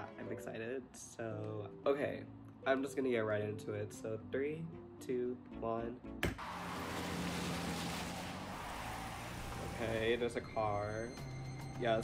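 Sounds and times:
car driving rushing noise: 0:06.4 - 0:10.7.

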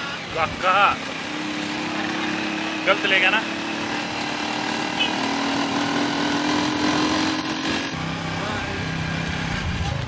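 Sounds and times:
small motorcycle engine: 0:00.0 - 0:10.0
wind and road noise: 0:00.0 - 0:10.0.

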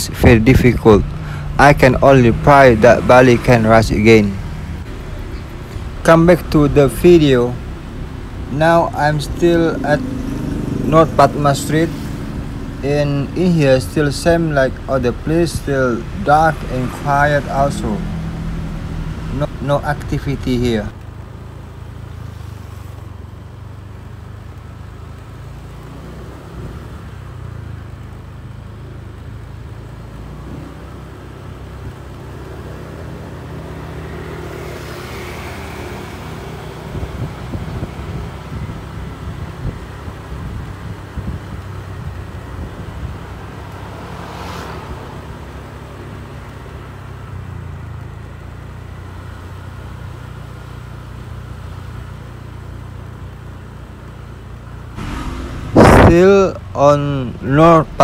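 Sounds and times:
road rumble: 0:00.0 - 0:58.0
short rush passing: 0:55.0 - 0:58.0.

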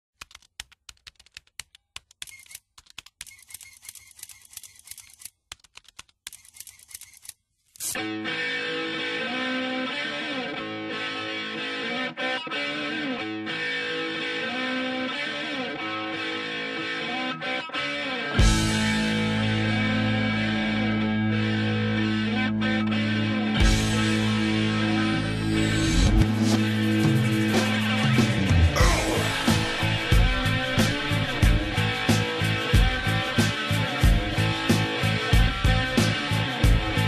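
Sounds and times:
electric guitar with effects: 0:08.0 - 0:37.0.

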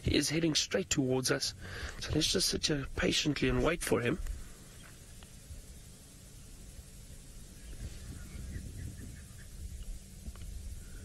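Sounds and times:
low rumble: 0:01.4 - 0:11.0
distant animal calls: 0:04.4 - 0:11.0.

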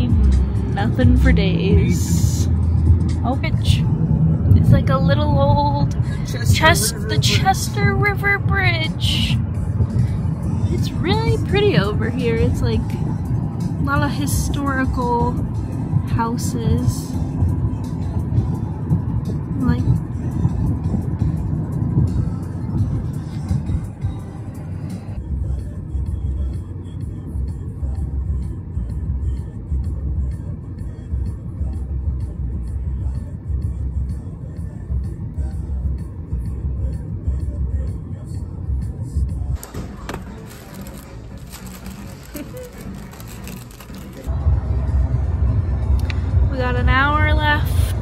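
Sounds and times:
car road and engine rumble: 0:00.0 - 0:48.0
music: 0:00.0 - 0:48.0.

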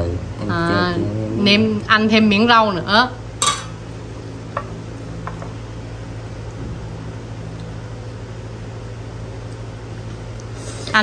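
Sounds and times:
steady low hum: 0:00.0 - 0:11.0
metal ladle clinking on pot: 0:03.4 - 0:03.8.

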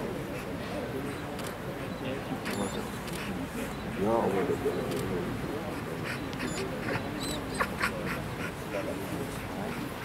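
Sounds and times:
spectators murmuring: 0:00.0 - 0:10.0.

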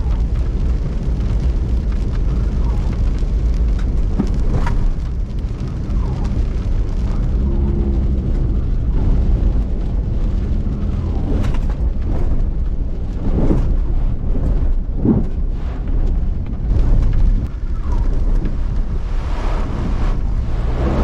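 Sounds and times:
vehicle engine and tyres rumbling: 0:00.0 - 0:21.0.

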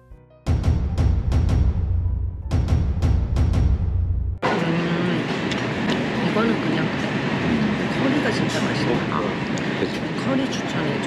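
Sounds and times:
dramatic music sting with drums: 0:00.5 - 0:04.3
indistinct voices: 0:04.4 - 0:11.0.

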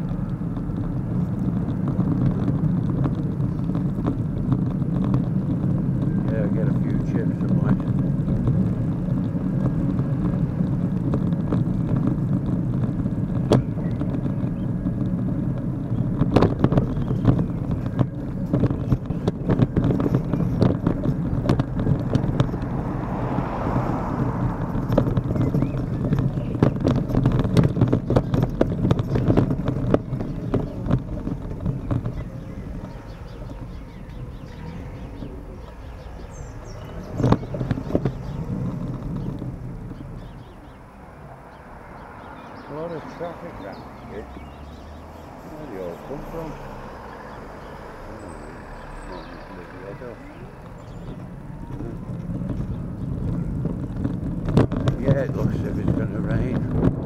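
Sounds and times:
car passing: 0:00.0 - 0:57.0
rattling knocks: 0:00.0 - 0:57.0
road rumble: 0:00.0 - 0:57.0
wind: 0:00.0 - 0:57.0.

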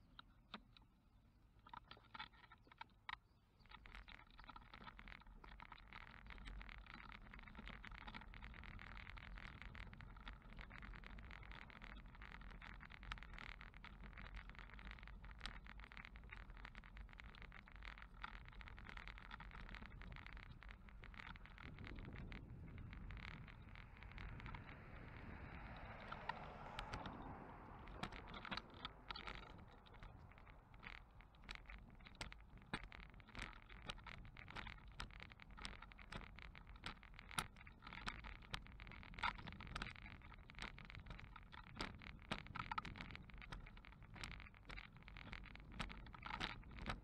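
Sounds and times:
wheels rolling on paved path: 0:00.0 - 0:47.0
car passing: 0:22.1 - 0:31.2.

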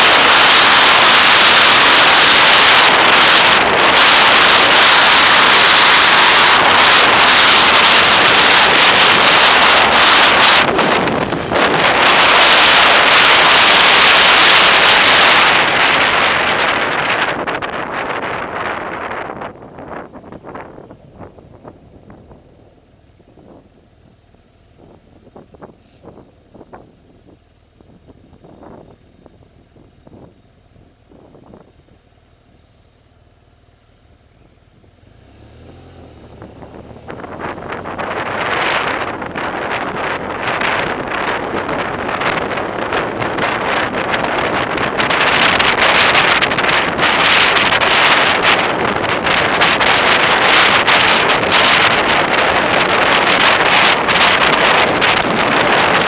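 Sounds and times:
wind buffeting microphone: 0:00.0 - 0:32.3, 0:34.3 - 0:56.0.

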